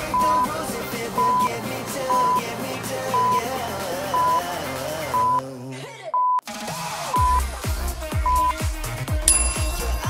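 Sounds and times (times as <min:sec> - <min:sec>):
pop music with sung vocals: 0:00.0 - 0:10.0
short high timer beeps: 0:03.2 - 0:03.4, 0:07.2 - 0:07.4, 0:08.3 - 0:08.6.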